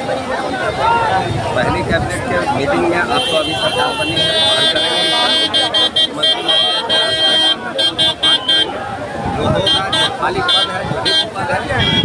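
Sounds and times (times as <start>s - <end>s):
crowd chatter: 0.0s - 12.0s
vehicle horn honking: 3.1s - 8.8s, 9.6s - 12.0s.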